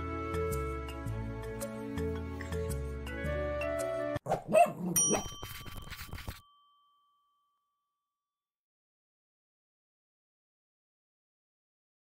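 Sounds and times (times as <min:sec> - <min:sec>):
faint chime ringing: 0:05.0 - 0:08.3.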